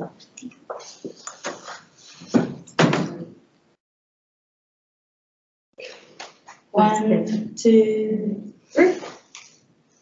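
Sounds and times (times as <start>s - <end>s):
knocks and thumps: 2.3s - 3.3s.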